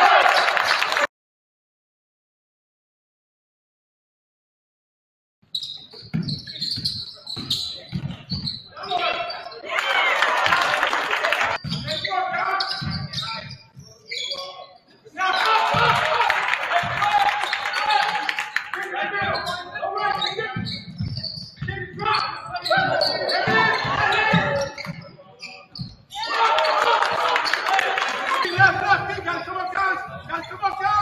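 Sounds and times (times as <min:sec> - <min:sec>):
voices echoing in gym: 0:05.8 - 0:31.0
basketball bouncing on hardwood: 0:06.0 - 0:08.5.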